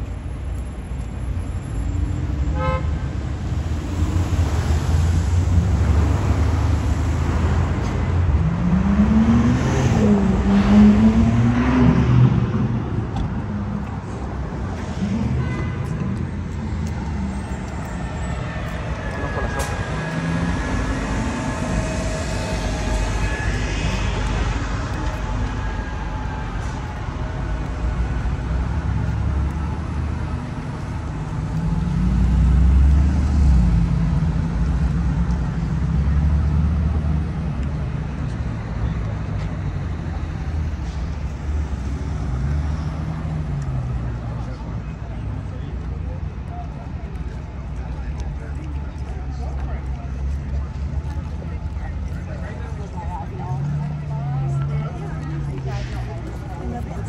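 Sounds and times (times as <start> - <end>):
cars passing: 0.0 - 57.0
engine revving: 3.9 - 12.8.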